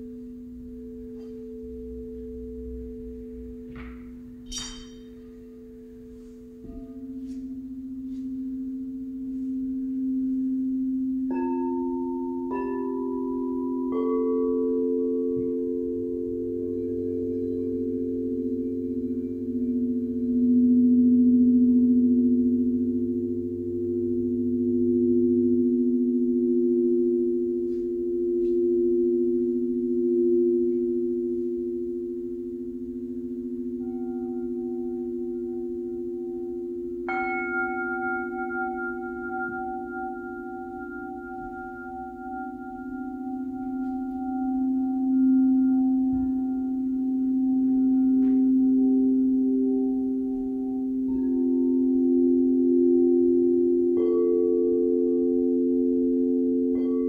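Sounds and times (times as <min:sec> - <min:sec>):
bowl struck with bright ring: 0:00.0 - 0:57.0
singing bowls ringing: 0:00.0 - 0:57.0.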